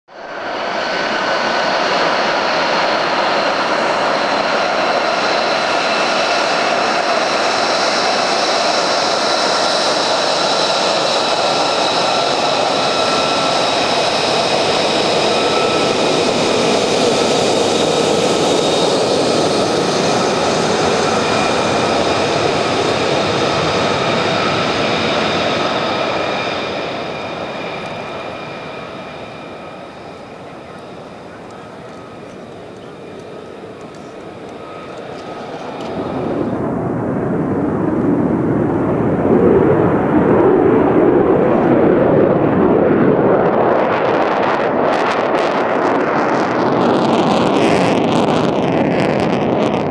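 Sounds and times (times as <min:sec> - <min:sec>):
high turbine whine: 0:00.1 - 0:49.9
jet engine running: 0:00.1 - 0:49.9.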